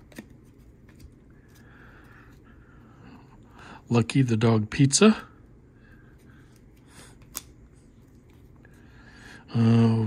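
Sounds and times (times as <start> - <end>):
trading cards handled: 0.0 - 2.4.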